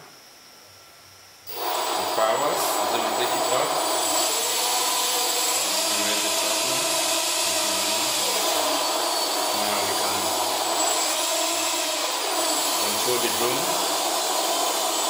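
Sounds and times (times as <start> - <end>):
drone motors whirring: 1.5 - 15.0.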